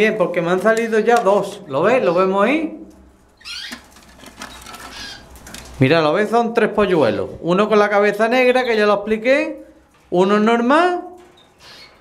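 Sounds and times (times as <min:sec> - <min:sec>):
cage bird chirping: 0:00.4 - 0:05.5, 0:06.7 - 0:09.6, 0:10.2 - 0:12.0.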